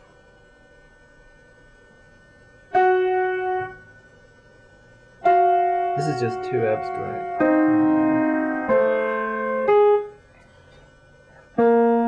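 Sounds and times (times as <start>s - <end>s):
piano chords: 2.7s - 3.8s, 5.2s - 10.3s, 11.4s - 12.0s.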